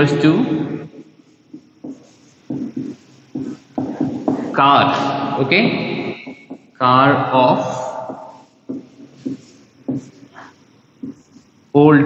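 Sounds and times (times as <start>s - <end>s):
man speaking: 0.0s - 0.7s, 4.5s - 6.1s, 6.8s - 8.0s, 11.8s - 12.0s.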